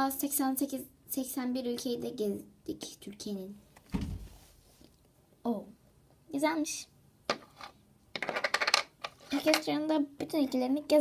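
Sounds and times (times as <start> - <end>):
plastic disc rattling on floor: 7.3 - 9.7.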